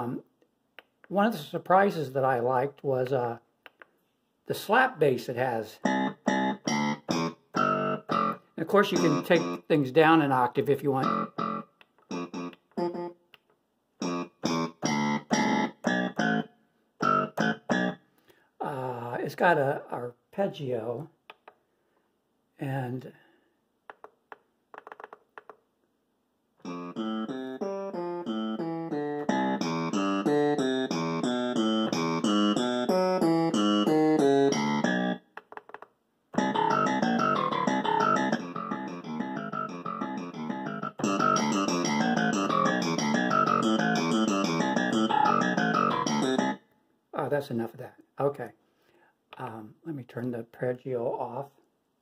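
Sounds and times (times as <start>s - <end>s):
keyboard arpeggio patterns: 5.8s - 9.7s, 10.9s - 13.2s, 14.0s - 18.0s, 26.6s - 35.7s, 36.4s - 46.6s.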